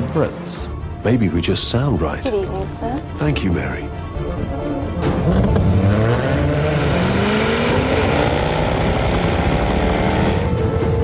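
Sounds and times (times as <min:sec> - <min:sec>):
car engine accelerating hard: 0:05.1 - 0:11.0.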